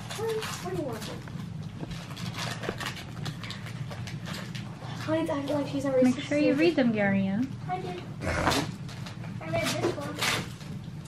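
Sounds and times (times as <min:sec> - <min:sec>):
wrapping paper crinkling: 0:00.0 - 0:05.6
low room hum: 0:00.0 - 0:11.0.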